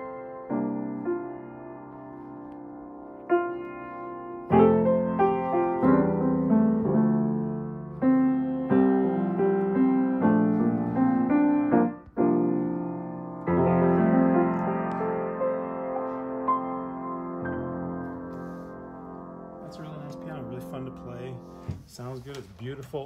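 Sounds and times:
grand piano playing chords: 0:00.0 - 0:22.2.

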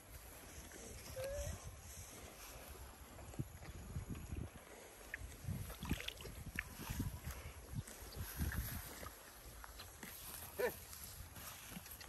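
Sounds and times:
wind rumble on microphone: 0:00.0 - 0:12.0
cow gulping water: 0:02.2 - 0:12.0
water sloshing: 0:05.0 - 0:07.4.

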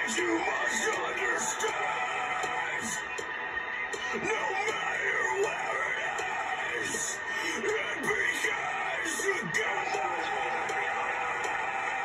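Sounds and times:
harsh metal vocal: 0:00.0 - 0:03.2, 0:03.9 - 0:12.0.

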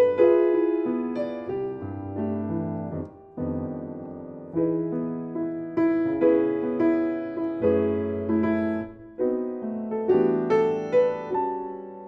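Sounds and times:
solo jazz piano chords: 0:00.0 - 0:12.0.

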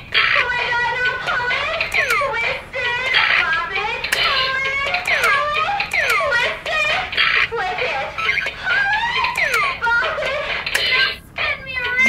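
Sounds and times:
electronic toy tones sliding: 0:01.9 - 0:02.3, 0:08.2 - 0:09.8.

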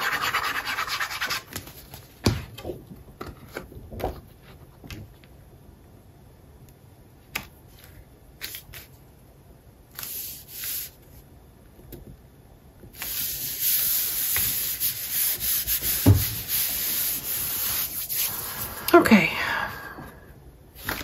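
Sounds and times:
hands rubbing paper: 0:00.0 - 0:01.9, 0:13.0 - 0:18.8.

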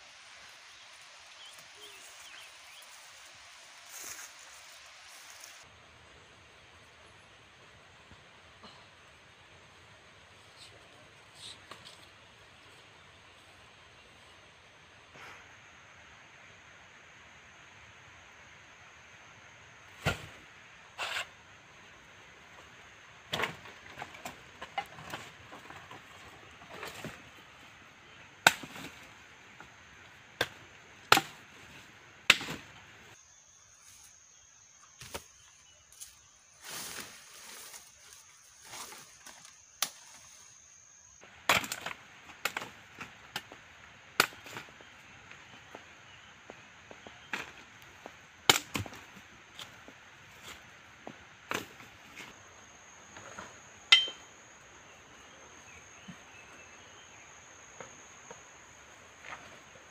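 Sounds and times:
machete chopping wood: 0:30.4 - 0:31.4, 0:32.3 - 0:32.7, 0:48.5 - 0:49.0, 0:53.9 - 0:54.2.

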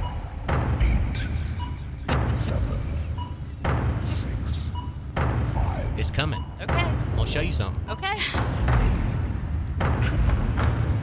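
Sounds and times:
deep rumbling drone: 0:00.0 - 0:11.0.

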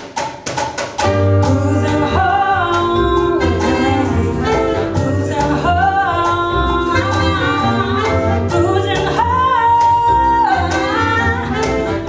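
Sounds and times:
latin jazz band playing: 0:00.0 - 0:12.0.

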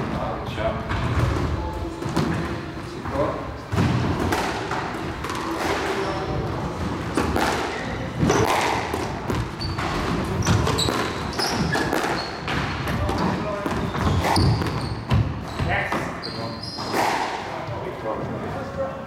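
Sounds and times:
squash ball thuds: 0:07.0 - 0:16.1
shoes squeaking on court floor: 0:09.2 - 0:17.8.

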